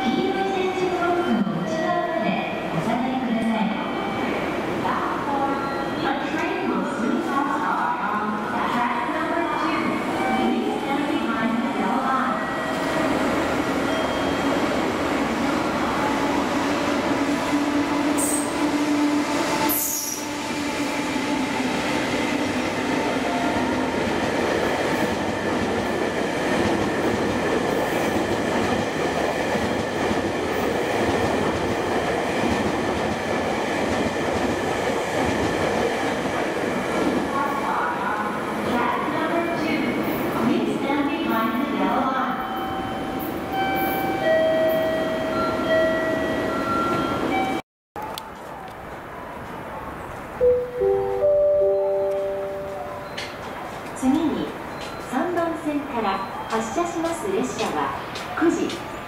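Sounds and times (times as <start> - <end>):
train wheels on rail: 12.4 - 38.7, 52.9 - 59.0.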